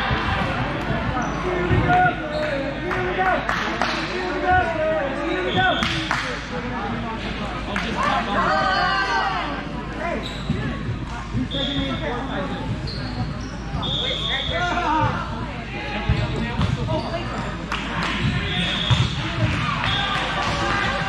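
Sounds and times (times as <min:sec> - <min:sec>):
voices calling and chattering: 0:00.0 - 0:21.0
sneakers squeaking on floor: 0:01.0 - 0:02.6, 0:10.0 - 0:15.2, 0:16.1 - 0:19.3
balls thumping on hardwood court: 0:16.1 - 0:17.0.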